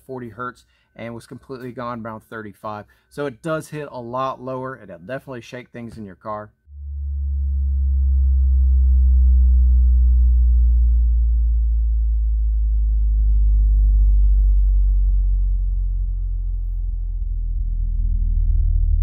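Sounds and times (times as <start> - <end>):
faint buzz of overtones: 6.6 - 19.0
bass tone sweeping down: 6.7 - 19.0.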